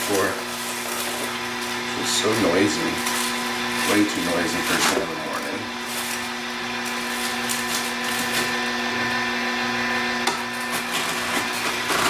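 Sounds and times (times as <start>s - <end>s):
juicer motor humming: 0.0s - 12.0s.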